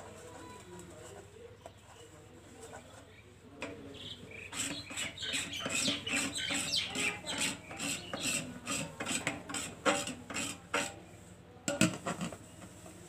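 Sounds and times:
scrubber rasping on metal plate: 4.3 - 11.0.

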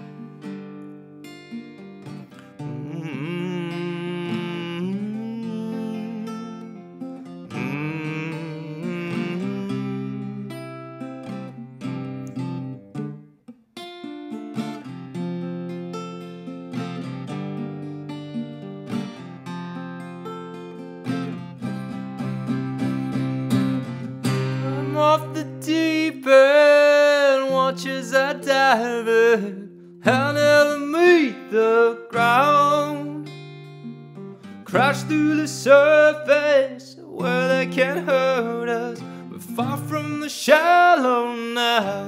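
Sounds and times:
acoustic guitar strumming: 0.0 - 42.0
man singing held note: 2.8 - 6.7, 7.5 - 10.5.

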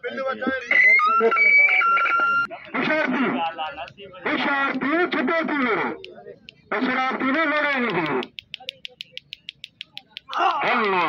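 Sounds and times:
rapid sharp high ticks: 2.5 - 4.9, 6.0 - 11.0
person calling out: 10.3 - 11.0.

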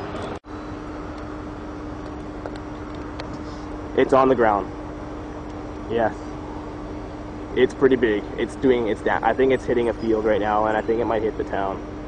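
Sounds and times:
car engine idling hum: 0.0 - 12.0.

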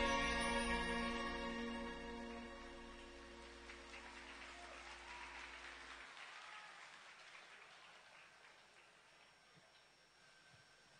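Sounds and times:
low held music chord: 0.0 - 4.7
audience applauding: 2.8 - 9.9.

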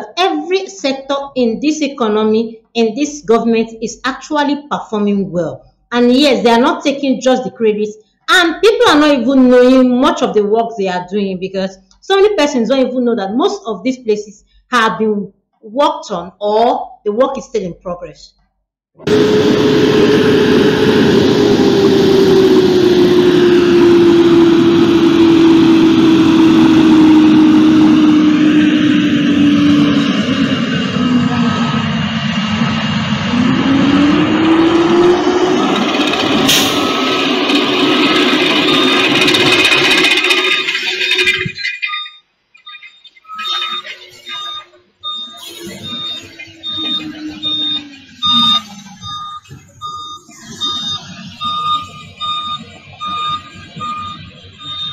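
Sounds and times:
heavy machinery engine drone: 19.0 - 54.9
scattered noises: 35.7 - 54.9
high beep: 36.5 - 37.3, 41.3 - 54.9.

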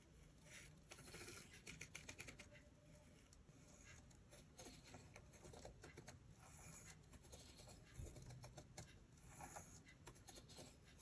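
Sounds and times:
pen scratching on paper: 0.0 - 11.0.

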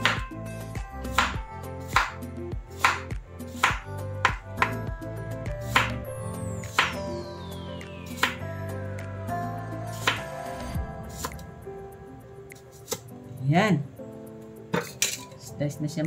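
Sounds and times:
background music: 0.0 - 16.0
knife tapping on cutting board: 3.6 - 4.8.

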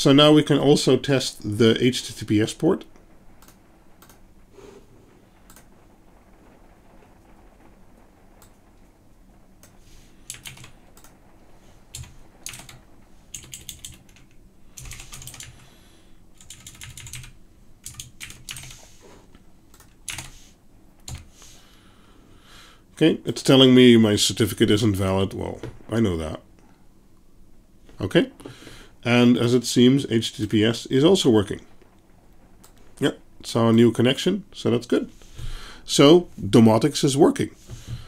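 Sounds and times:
faint low hum: 0.0 - 38.0
computer keyboard typing: 10.3 - 11.2, 11.9 - 15.6, 16.4 - 18.8, 19.7 - 20.4, 21.0 - 21.3.

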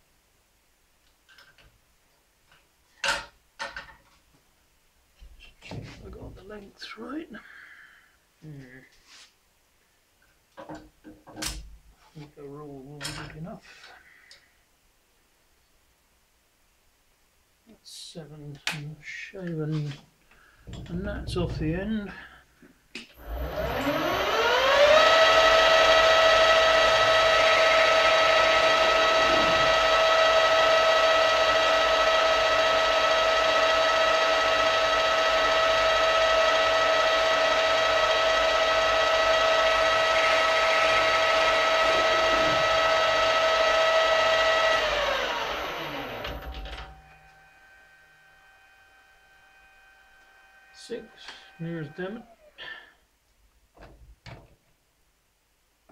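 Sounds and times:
metal lathe spindle whine: 23.2 - 52.5.

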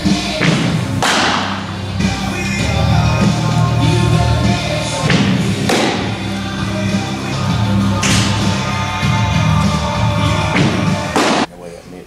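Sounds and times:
background music: 0.0 - 11.5.

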